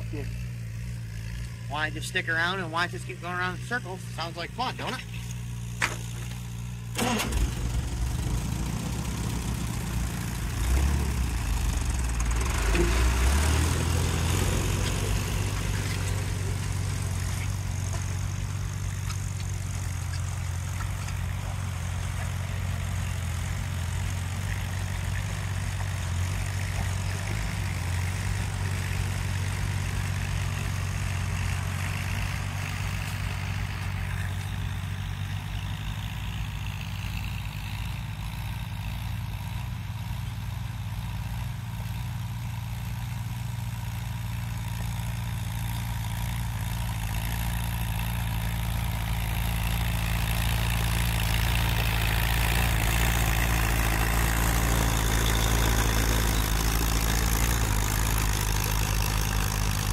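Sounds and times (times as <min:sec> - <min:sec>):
tractor engines running: 0:00.0 - 0:59.9.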